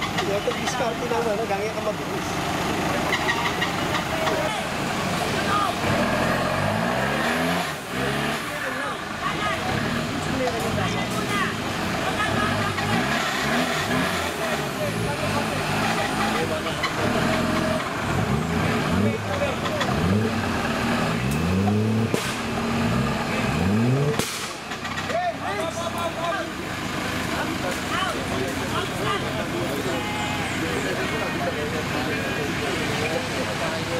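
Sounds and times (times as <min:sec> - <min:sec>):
voices: 0:00.0 - 0:33.9
engine revving: 0:02.0 - 0:33.9.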